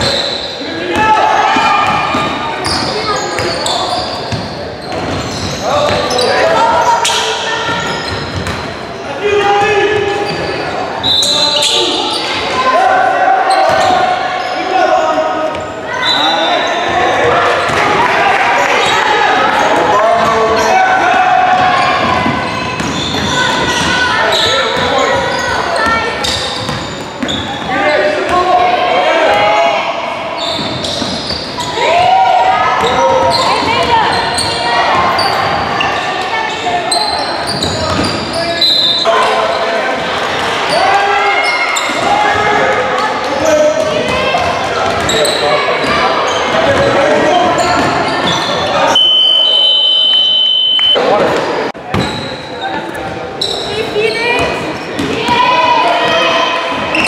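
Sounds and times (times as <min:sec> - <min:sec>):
echoing voices in a hall: 0:00.0 - 0:57.0
high whistle: 0:48.9 - 0:51.0.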